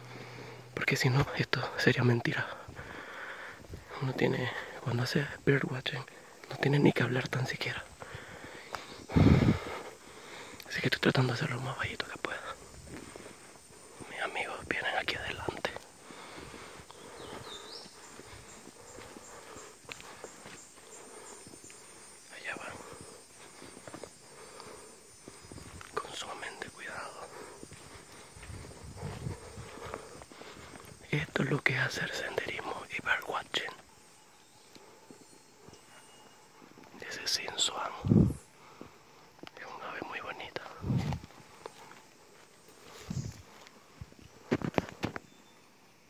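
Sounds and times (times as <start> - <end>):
footsteps on forest trail: 0.0 - 5.5, 6.1 - 45.5
person whispering: 0.8 - 2.7, 3.9 - 8.0, 10.6 - 12.7, 13.8 - 33.9, 37.0 - 38.4, 39.5 - 41.2
faint high chirp: 33.7 - 38.3, 45.2 - 45.8.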